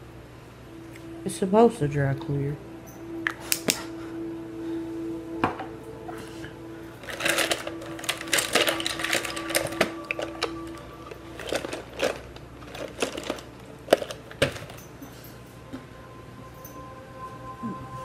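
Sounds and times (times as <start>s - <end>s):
steady held tone: 0.0s - 18.0s
video game music: 0.6s - 14.4s.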